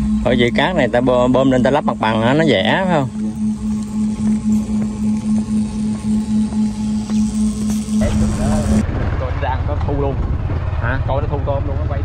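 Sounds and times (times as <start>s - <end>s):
paddlewheel aerator humming: 0.0s - 8.9s.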